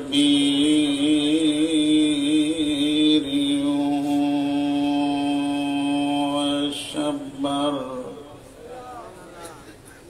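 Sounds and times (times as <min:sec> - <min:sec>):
man chanting: 0:00.0 - 0:09.2.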